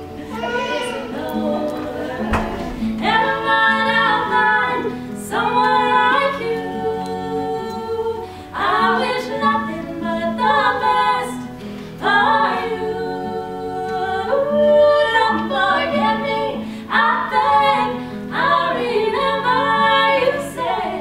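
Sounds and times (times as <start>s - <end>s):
acoustic guitar: 0.0s - 21.0s
woman singing: 0.0s - 21.0s.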